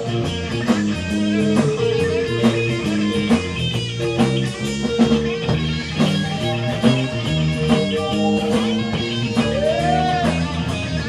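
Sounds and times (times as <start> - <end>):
bass guitar: 0.0 - 11.0
electric guitar: 0.0 - 11.0
steady drum beat: 0.0 - 11.0.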